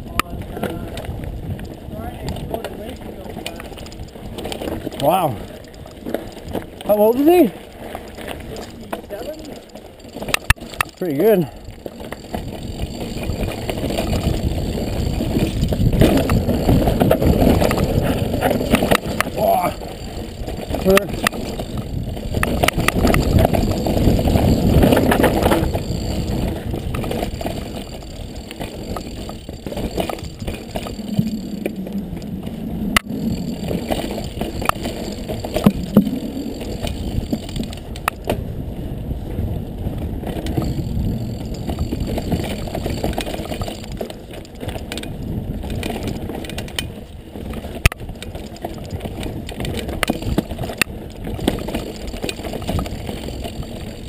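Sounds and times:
wind on microphone: 0:00.0 - 0:06.7, 0:11.5 - 0:54.0
bike rattling over bumps: 0:00.0 - 0:54.0
bike tyres crunching on dirt: 0:00.0 - 0:54.0.

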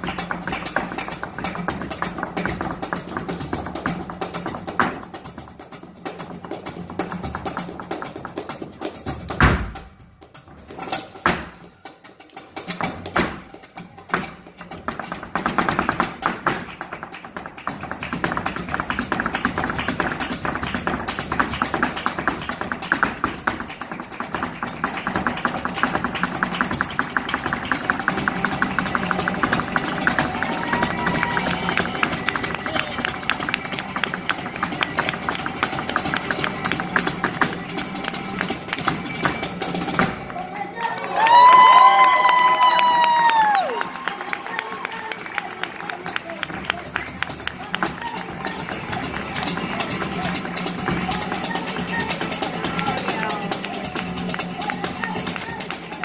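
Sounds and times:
heeled shoes tapping on stage: 0:00.0 - 0:40.4, 0:41.2 - 0:56.0.

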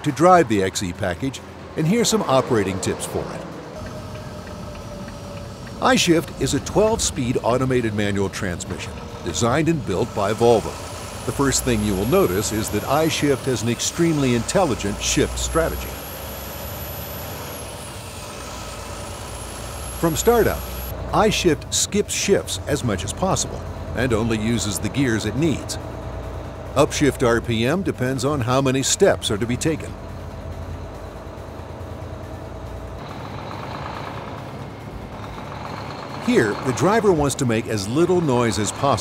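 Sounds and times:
truck engine and tyre noise: 0:00.0 - 0:39.0.

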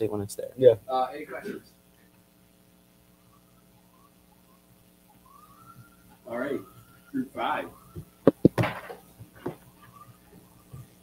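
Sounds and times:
faint steady hum: 0:00.0 - 0:11.0
faint thin tone rising in pitch: 0:03.1 - 0:08.5, 0:09.7 - 0:11.0.

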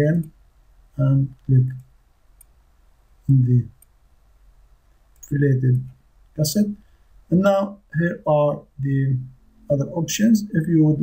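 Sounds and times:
computer mouse click: 0:01.3 - 0:02.6, 0:05.1 - 0:06.0.

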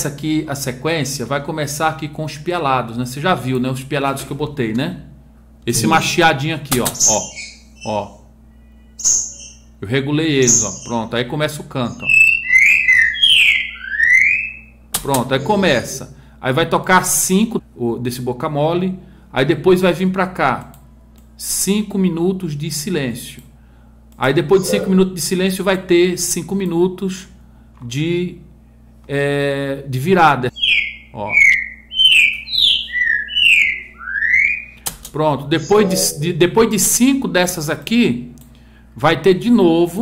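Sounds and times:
songbird whistling song: 0:07.0 - 0:09.8, 0:10.4 - 0:11.1, 0:12.0 - 0:14.8, 0:30.5 - 0:34.9.

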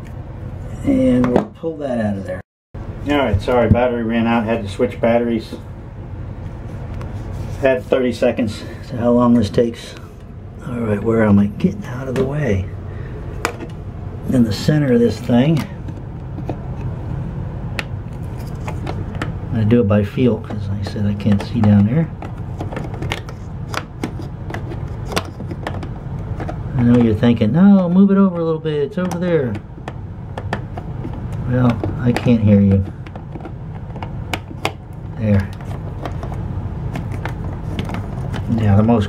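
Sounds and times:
steady low hum: 0:00.0 - 0:39.0.

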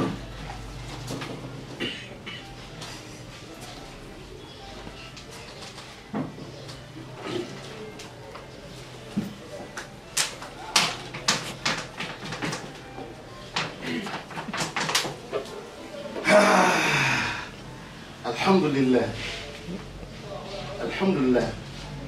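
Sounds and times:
faint low voices: 0:00.0 - 0:22.0.

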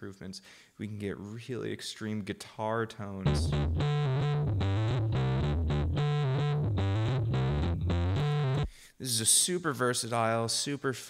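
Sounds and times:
distorted bass line: 0:03.3 - 0:08.7.

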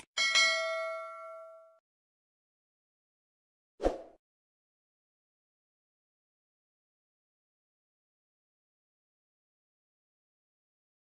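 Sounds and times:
notification bell ding: 0:00.2 - 0:01.8.

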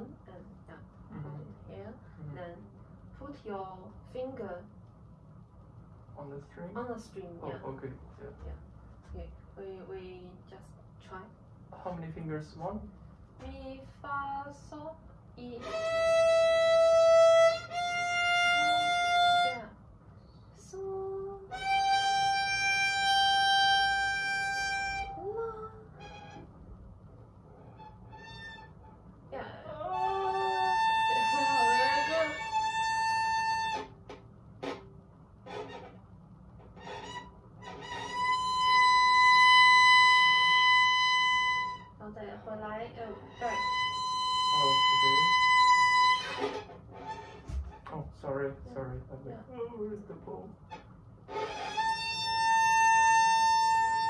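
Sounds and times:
violin long held notes: 0:15.6 - 0:19.6, 0:21.1 - 0:26.4, 0:29.7 - 0:33.9, 0:43.3 - 0:47.2.

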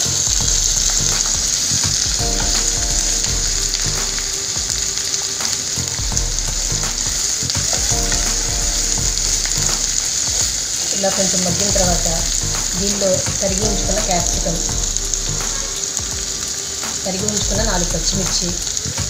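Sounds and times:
vegetables sizzling in a pan: 0:00.0 - 0:19.0.

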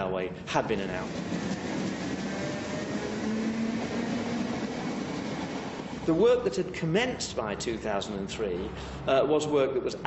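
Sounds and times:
train wheels rushing on rails: 0:00.0 - 0:09.0.

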